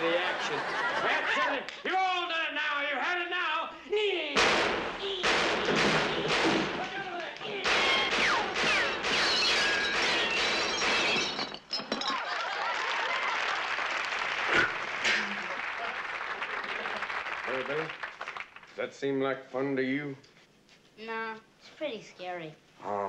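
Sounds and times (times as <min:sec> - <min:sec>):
loud crash: 0:04.4 - 0:07.0, 0:07.6 - 0:11.6
shouting voices: 0:06.8 - 0:08.6
crashes and breaking glass: 0:07.6 - 0:12.2.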